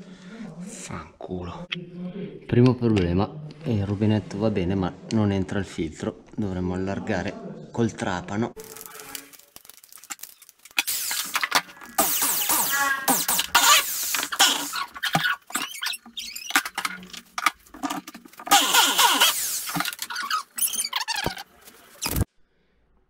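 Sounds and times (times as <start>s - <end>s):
electric drill bit squealing: 10.8s - 16.9s, 18.5s - 21.4s.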